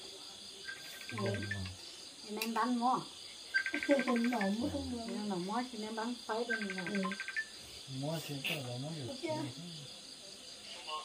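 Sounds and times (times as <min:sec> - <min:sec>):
high insect drone: 0:00.0 - 0:11.0
insect chirping trills: 0:00.0 - 0:11.0
people talking: 0:01.1 - 0:07.2, 0:07.9 - 0:11.0.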